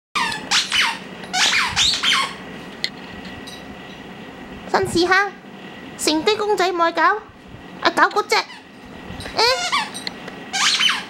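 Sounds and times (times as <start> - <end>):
squeaky dog toy squeaking: 0.2 - 2.4, 9.3 - 11.0.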